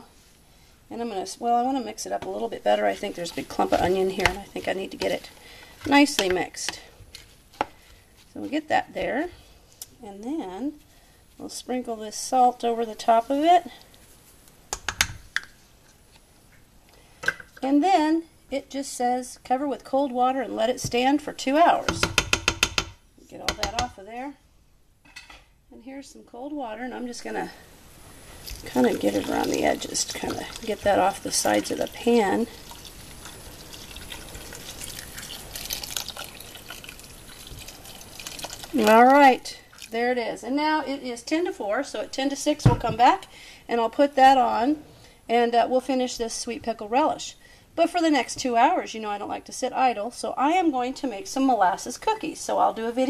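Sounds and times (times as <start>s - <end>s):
water pouring into a pot: 28.3s - 40.0s.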